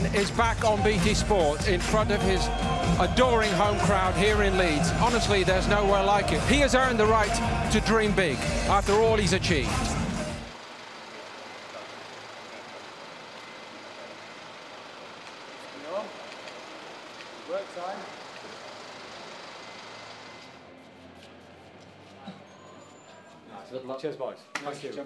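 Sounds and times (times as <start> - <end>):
minibus engine idling: 10.2 - 20.5.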